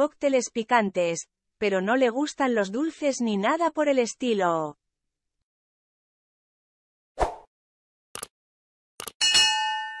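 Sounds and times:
bell ding: 0:09.2 - 0:10.0.

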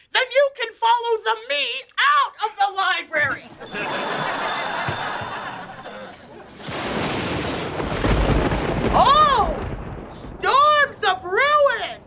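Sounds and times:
thunder-like rumbling: 0:06.7 - 0:11.2.

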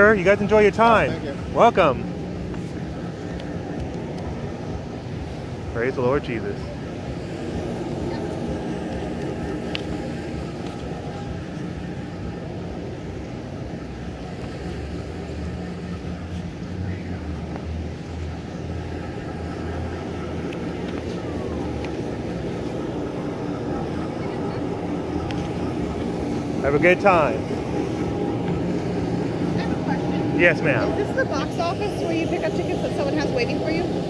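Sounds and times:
deep drone: 0:00.0 - 0:34.0
low outdoor rumble: 0:00.0 - 0:34.0.

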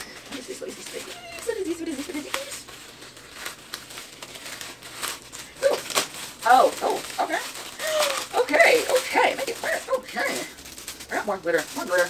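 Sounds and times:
plastic bag crinkling: 0:00.0 - 0:12.0
plastic bag tearing: 0:00.0 - 0:12.0.

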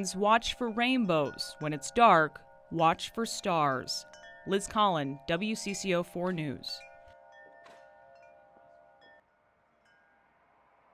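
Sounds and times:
faint chimes ringing: 0:00.0 - 0:10.9.

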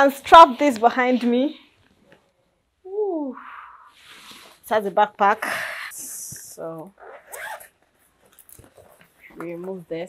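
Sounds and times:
zipper being pulled open: 0:06.9 - 0:09.4.

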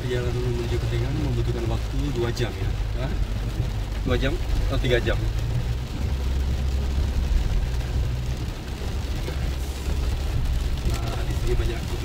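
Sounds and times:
engine and tyre rumble: 0:00.0 - 0:12.0
rain hiss: 0:00.0 - 0:12.0.

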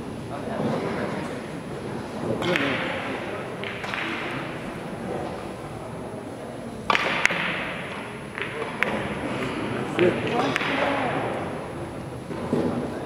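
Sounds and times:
background chatter: 0:00.0 - 0:13.0.

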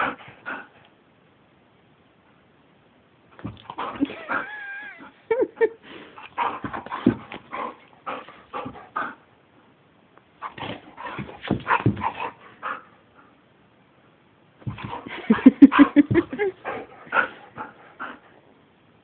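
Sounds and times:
dog whining: 0:03.8 - 0:05.2.

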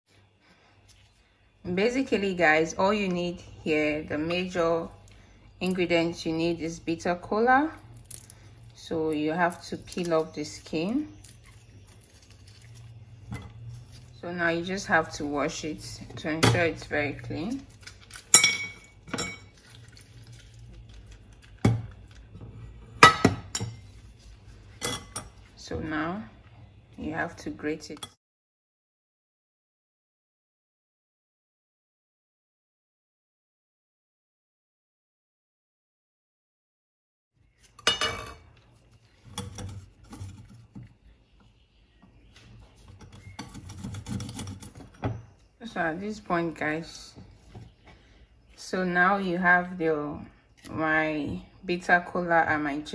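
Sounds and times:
kitchenware clinking: 0:16.1 - 0:20.0, 0:21.5 - 0:23.9, 0:24.7 - 0:25.4, 0:37.8 - 0:38.5
metal clinking on glass: 0:18.3 - 0:19.5.

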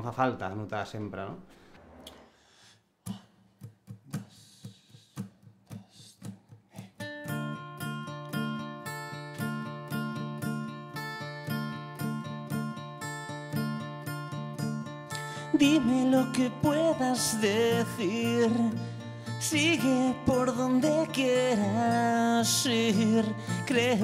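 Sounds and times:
acoustic guitars strumming: 0:03.2 - 0:24.0.

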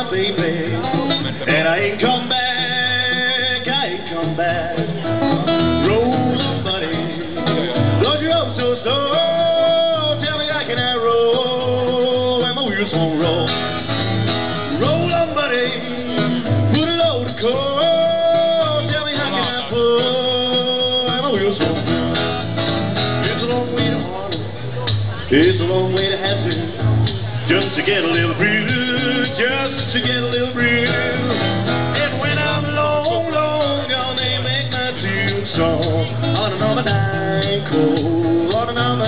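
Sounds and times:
man singing: 0:00.0 - 0:22.4, 0:23.0 - 0:39.0
acoustic guitar strumming: 0:00.0 - 0:39.0.

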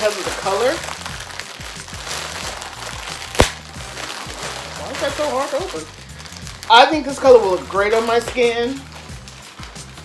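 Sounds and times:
plastic bag crinkling: 0:00.0 - 0:10.0
plastic snapping: 0:03.3 - 0:03.6.

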